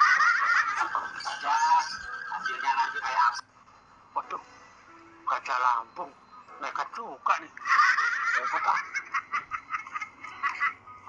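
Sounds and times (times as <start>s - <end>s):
high-pitched laughter: 0.0s - 3.0s, 7.6s - 11.0s.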